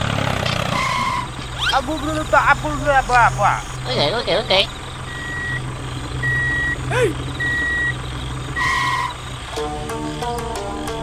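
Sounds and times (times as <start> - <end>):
vehicle engine humming: 0.0 - 11.0
short beep: 5.1 - 8.0
music: 9.5 - 11.0.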